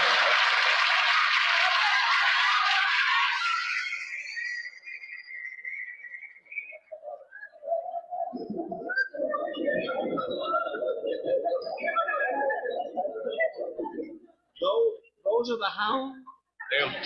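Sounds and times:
studio audience applauding: 0.0s - 4.6s.

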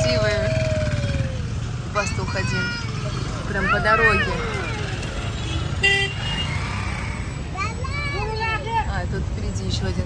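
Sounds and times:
road traffic rumble inside car: 0.0s - 10.0s
vehicle horn toot: 5.4s - 6.6s.

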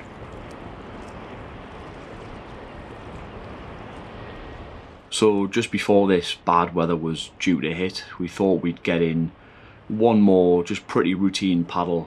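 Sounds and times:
sea water rushing: 0.0s - 7.6s.

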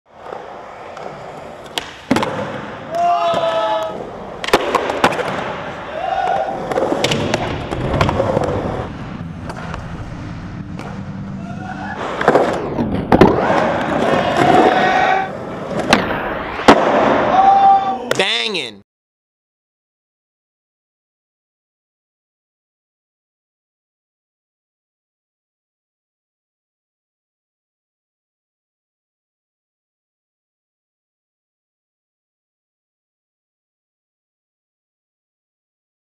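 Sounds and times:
skateboard tail crack: 0.1s - 10.0s, 12.0s - 17.5s
skateboard wheels rolling on concrete: 0.1s - 17.8s.

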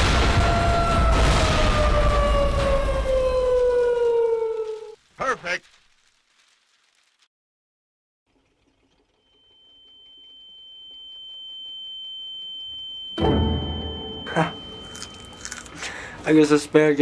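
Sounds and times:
high-pitched ringing tone: 9.2s - 16.0s.

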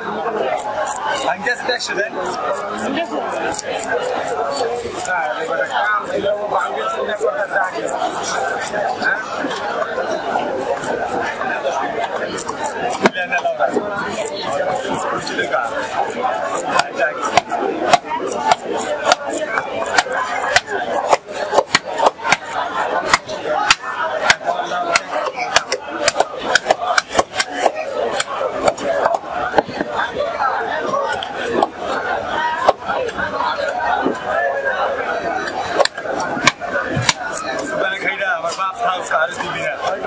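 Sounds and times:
background chatter of voices: 0.0s - 40.0s
fish being cut on blade: 0.5s - 1.4s, 2.2s - 5.7s, 12.1s - 29.2s.

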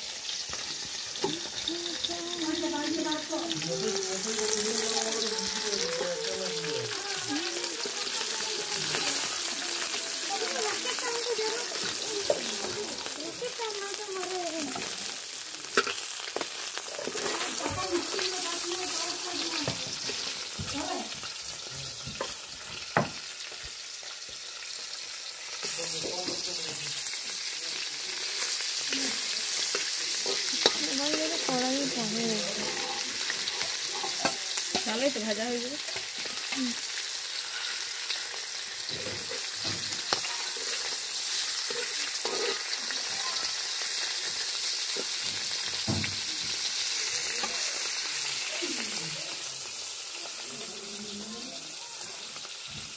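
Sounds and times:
fish frying in oil: 0.0s - 52.9s
metal spatula scraping pan: 16.9s - 19.2s, 29.6s - 35.0s, 39.0s - 42.8s.

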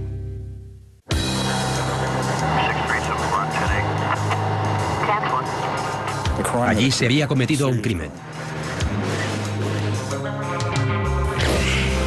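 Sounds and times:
indistinct voices: 1.4s - 8.2s
vehicle: 1.4s - 10.3s.

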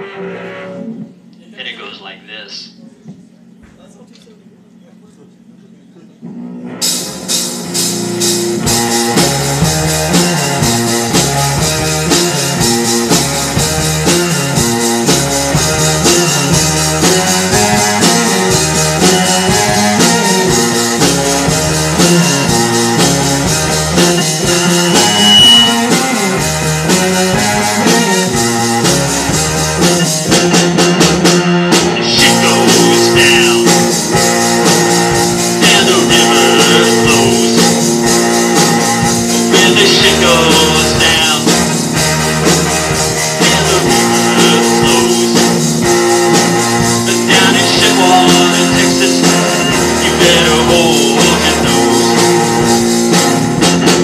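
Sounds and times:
live rock band playing: 6.2s - 54.0s.

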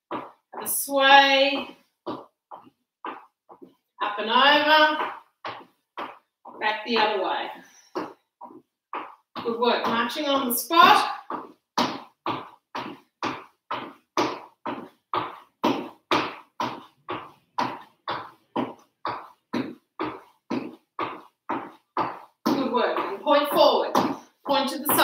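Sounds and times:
footsteps on wooden floor: 0.0s - 25.0s
person speaking: 0.6s - 1.7s, 4.0s - 5.2s, 6.5s - 7.6s, 9.4s - 11.2s, 22.5s - 25.0s.

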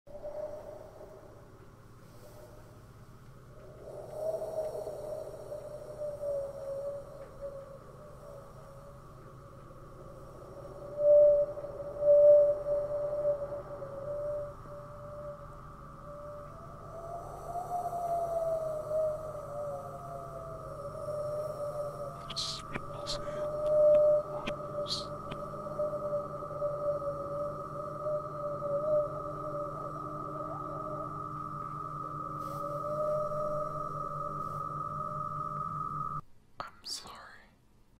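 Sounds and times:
low steady hum: 0.1s - 38.0s
wavering drawn-out call: 3.6s - 36.2s
electronic drone: 4.4s - 36.2s
whispered voice sweeping pitch: 22.2s - 25.4s, 36.6s - 37.6s.

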